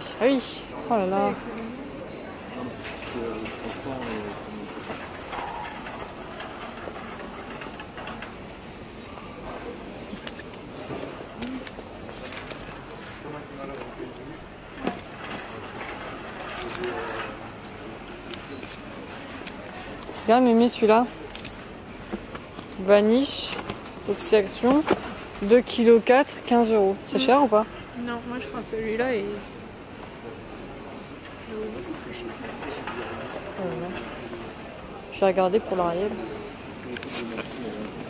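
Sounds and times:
indistinct voices of shoppers: 0:00.0 - 0:38.0
store hum: 0:00.0 - 0:38.0.

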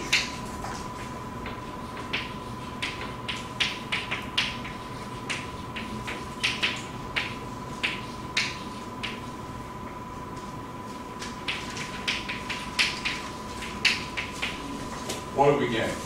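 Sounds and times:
chalk tapping on blackboard: 0:01.0 - 0:09.3.

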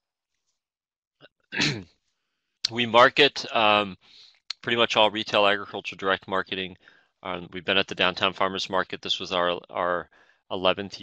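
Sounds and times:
man clearing throat: 0:01.6 - 0:01.8.

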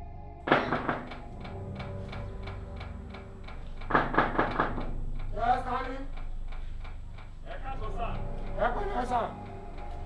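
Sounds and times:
steady low hum: 0:00.0 - 0:10.0
fast even ticking: 0:00.7 - 0:10.0.

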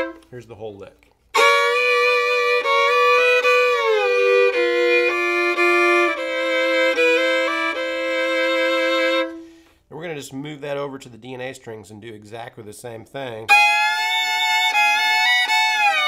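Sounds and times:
fiddle playing double-stops: 0:00.0 - 0:00.2, 0:01.4 - 0:09.4, 0:13.5 - 0:16.0.

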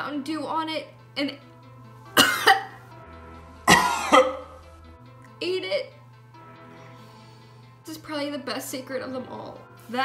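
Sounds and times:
soft background music: 0:00.0 - 0:10.0
woman coughing: 0:02.2 - 0:02.8, 0:03.7 - 0:04.6.

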